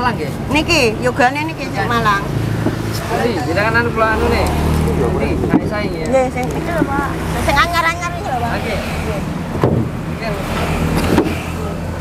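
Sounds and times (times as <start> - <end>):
people talking: 0.0 - 2.4, 3.0 - 9.3
vehicle engine humming: 0.0 - 12.0.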